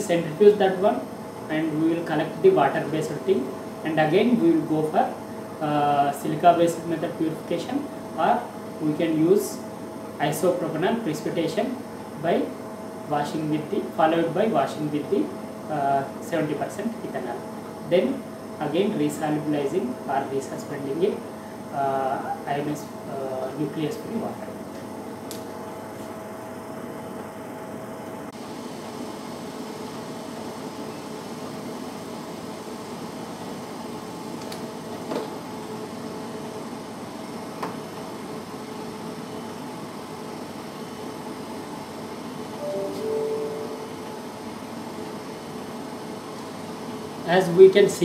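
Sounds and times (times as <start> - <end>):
mechanical hum: 0.0 - 48.0
soft tone: 42.6 - 44.4.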